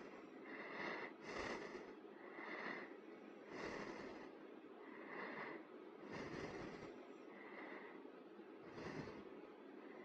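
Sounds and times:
man breathing: 0:00.0 - 0:10.0.

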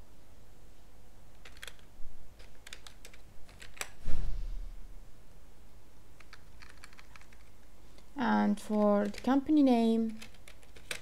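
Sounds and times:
keyboard typing: 0:01.4 - 0:04.0, 0:06.2 - 0:11.0.

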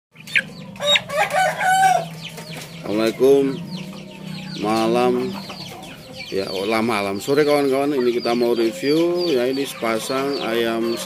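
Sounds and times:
young cockerel crowing: 0:00.8 - 0:02.1.

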